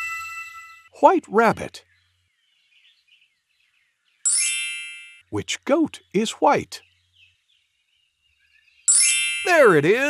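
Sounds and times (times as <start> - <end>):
bright high chime: 4.3 - 5.2, 8.9 - 9.8.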